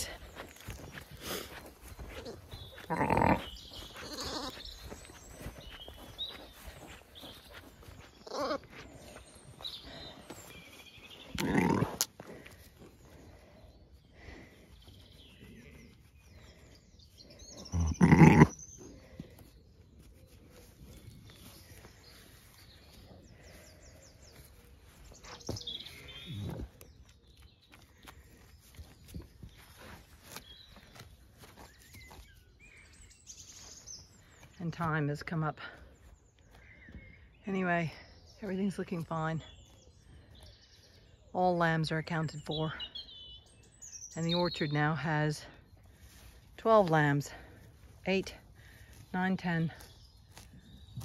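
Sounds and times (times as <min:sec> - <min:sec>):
sheep bleating: 0:02.8 - 0:04.6, 0:11.4 - 0:12.0, 0:17.7 - 0:18.5.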